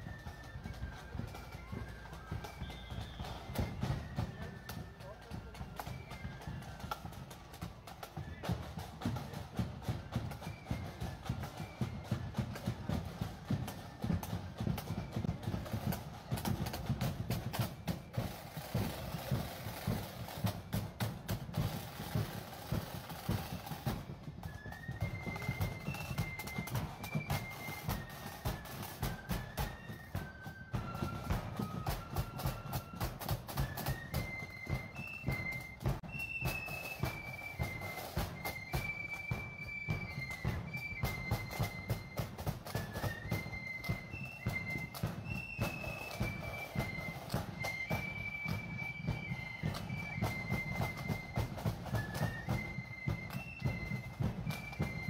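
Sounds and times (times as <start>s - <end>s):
drums beating march rhythm: 0.0s - 55.0s
flutes playing melody: 0.0s - 55.0s.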